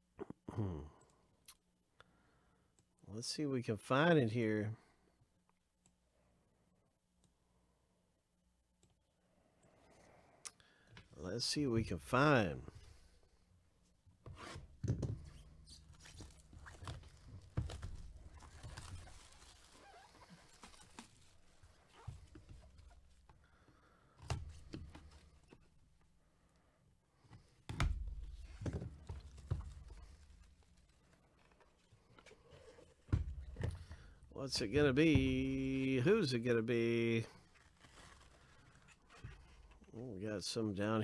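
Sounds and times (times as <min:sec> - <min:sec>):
cardboard rustling: 0:14.5 - 0:23.3, 0:28.0 - 0:33.9, 0:37.4 - 0:39.8.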